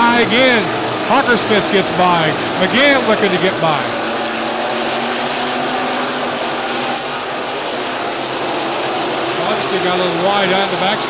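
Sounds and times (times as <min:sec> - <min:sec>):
race car engines: 0:00.0 - 0:11.0.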